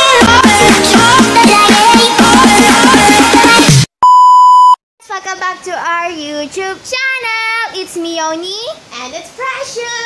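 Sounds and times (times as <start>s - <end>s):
test tone bleep: 4.0s - 4.8s.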